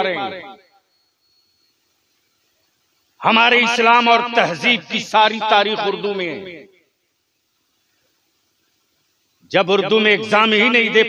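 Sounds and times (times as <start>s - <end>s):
faint hiss: 0.8s - 10.7s.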